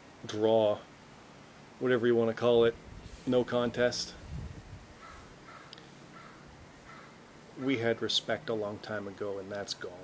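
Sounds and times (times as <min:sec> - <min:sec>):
short bird calls: 0:05.0 - 0:07.9.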